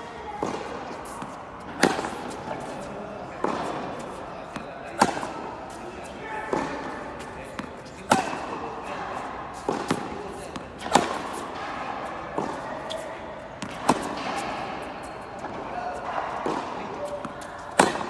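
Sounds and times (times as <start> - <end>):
ball bouncing on court: 0.3 - 2.4, 6.5 - 8.6, 13.6 - 14.8, 15.4 - 18.0
tennis ball struck by rackets: 0.3 - 5.5, 6.5 - 13.0, 13.6 - 18.0.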